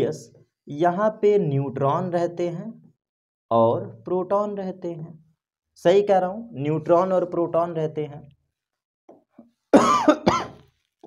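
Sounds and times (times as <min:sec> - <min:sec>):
man coughing: 0:09.8 - 0:10.6.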